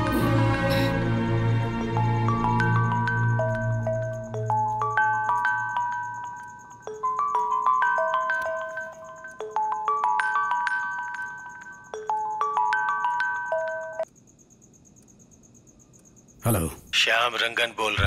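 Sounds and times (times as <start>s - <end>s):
marimba-like phone ringtone: 2.5s - 14.1s.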